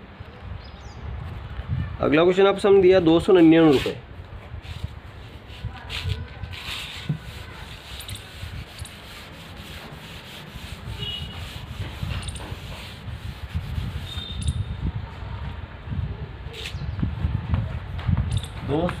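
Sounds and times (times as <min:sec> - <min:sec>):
chalkboard being wiped: 0:03.4 - 0:04.0, 0:04.6 - 0:14.3.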